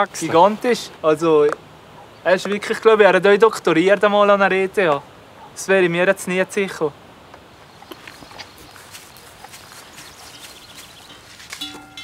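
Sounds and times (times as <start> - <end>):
footsteps shuffling on grass: 7.6 - 12.0
ringing tone: 11.6 - 12.0.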